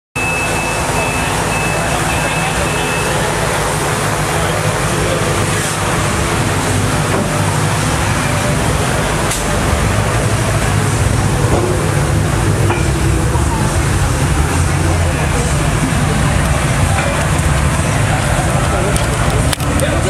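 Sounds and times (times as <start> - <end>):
high electronic beep: 0.2 - 3.6
car engine idling: 0.2 - 20.0.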